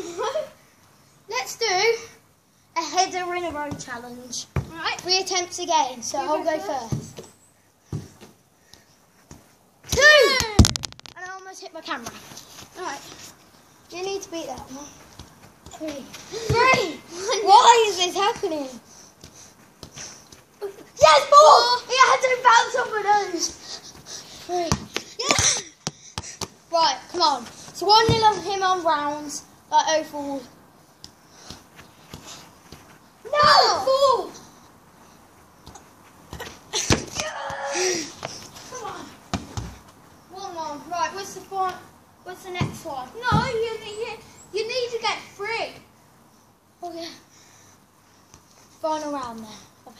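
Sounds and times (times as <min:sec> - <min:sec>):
football being headed: 0:09.3 - 0:10.8, 0:14.3 - 0:18.6, 0:24.5 - 0:28.6, 0:35.6 - 0:39.8
children calling out: 0:09.8 - 0:10.7, 0:20.6 - 0:25.8, 0:33.2 - 0:34.5, 0:36.3 - 0:39.2
football being kicked: 0:24.6 - 0:26.5.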